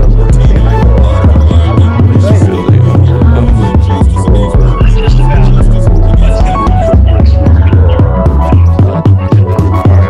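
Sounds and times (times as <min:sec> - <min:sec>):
experimental electronic music: 0:00.0 - 0:10.0.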